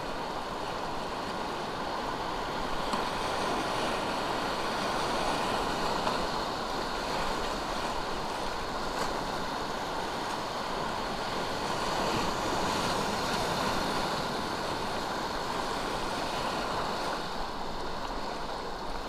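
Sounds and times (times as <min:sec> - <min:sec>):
whitewater rapids roaring: 0:00.0 - 0:19.0.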